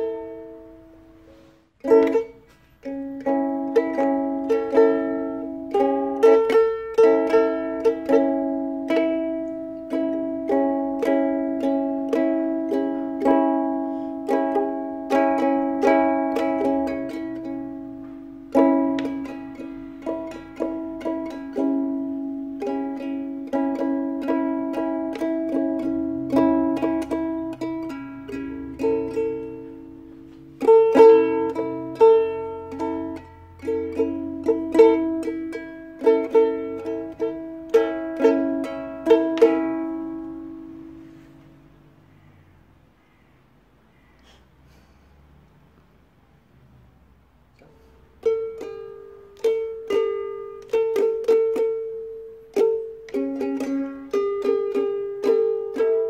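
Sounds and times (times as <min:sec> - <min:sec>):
ukulele plucked slowly: 0:00.0 - 0:43.3, 0:47.4 - 0:56.0.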